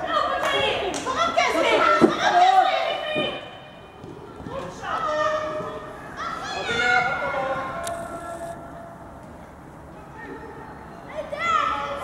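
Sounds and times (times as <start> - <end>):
young voices calling out: 4.7 - 8.8.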